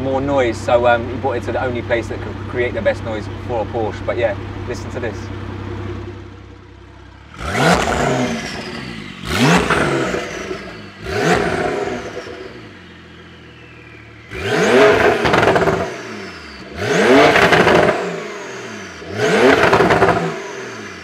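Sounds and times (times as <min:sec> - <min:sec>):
car engine idling: 0:00.0 - 0:21.0
car engine revving: 0:00.0 - 0:21.0.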